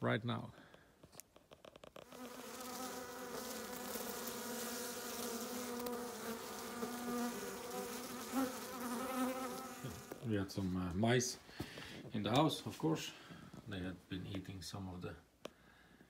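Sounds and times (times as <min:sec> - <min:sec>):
honeybees buzzing: 0:02.0 - 0:10.2.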